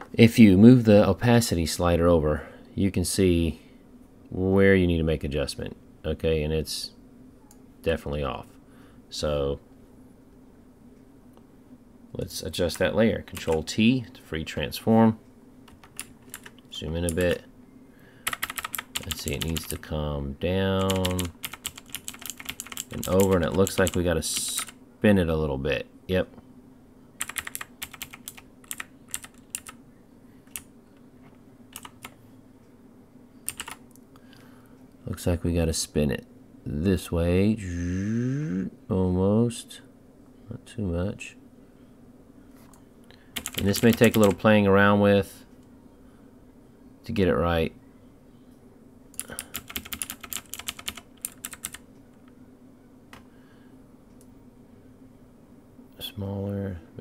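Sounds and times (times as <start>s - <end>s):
computer keyboard clicking: 15.7s - 17.2s, 18.2s - 19.8s, 20.8s - 24.7s, 27.2s - 29.8s, 31.7s - 32.1s, 33.5s - 33.8s, 43.4s - 44.4s, 49.2s - 51.8s.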